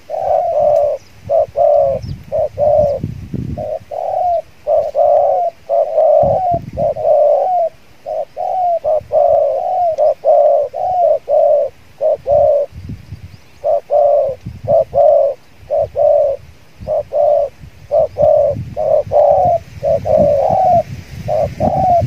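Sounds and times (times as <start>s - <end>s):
dove cooing: 0.0s - 22.0s.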